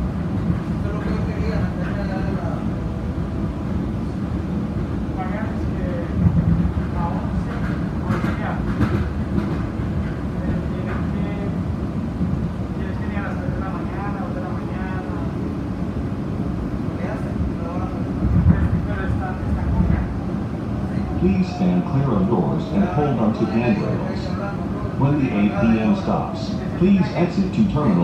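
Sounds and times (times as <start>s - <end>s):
train car low rumble: 0.0s - 28.0s
indistinct voices: 17.2s - 28.0s.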